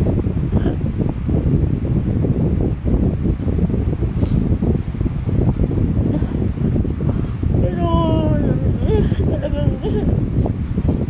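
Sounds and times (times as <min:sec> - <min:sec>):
wind noise on microphone: 0:00.0 - 0:11.0.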